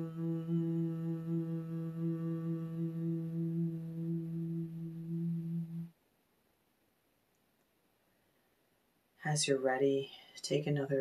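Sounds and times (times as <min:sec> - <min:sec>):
woman humming low note: 0:00.0 - 0:05.9.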